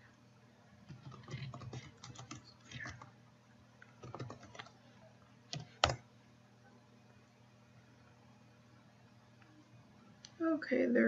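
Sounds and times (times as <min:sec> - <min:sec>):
typing on computer keyboard: 0:00.9 - 0:03.1, 0:03.8 - 0:04.8, 0:05.5 - 0:06.0.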